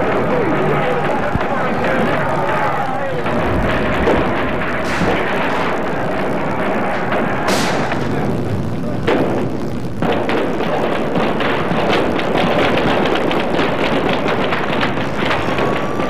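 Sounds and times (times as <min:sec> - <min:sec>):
noisy background: 0:00.0 - 0:16.0
gunshot cracks: 0:03.2 - 0:08.4, 0:09.0 - 0:16.0.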